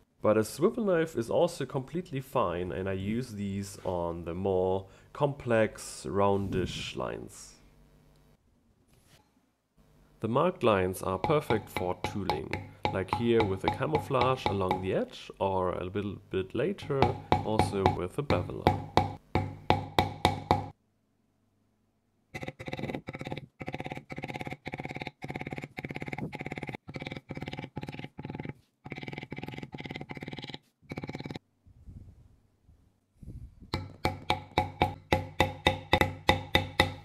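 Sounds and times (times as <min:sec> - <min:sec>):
mallet tapping stamping tool on leather: 0:11.2 - 0:14.9, 0:16.9 - 0:20.8, 0:33.8 - 0:37.0.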